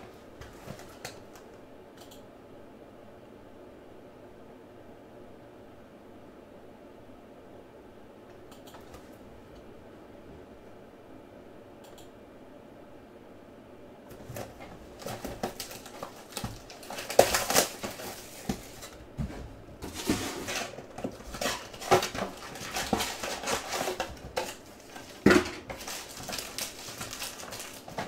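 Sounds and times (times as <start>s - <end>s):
cardboard box and foil packs crinkling: 0.4s - 1.4s, 14.1s - 28.0s.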